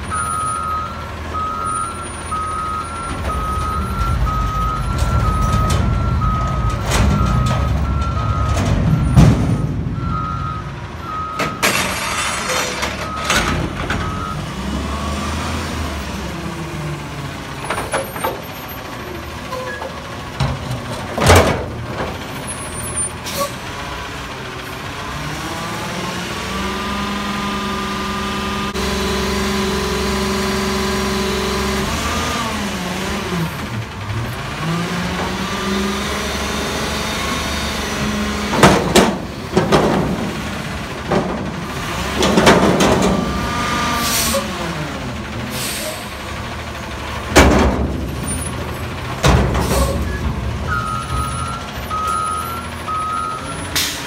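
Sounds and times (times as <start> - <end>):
garbage truck diesel engine revving: 0.0 - 17.6, 20.1 - 54.0
loud metal clanks: 47.2 - 51.4.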